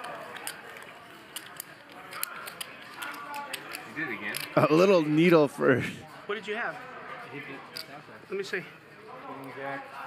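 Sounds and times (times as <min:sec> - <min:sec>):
low table chatter: 0:00.0 - 0:10.0
poker chips clicking: 0:00.1 - 0:04.6.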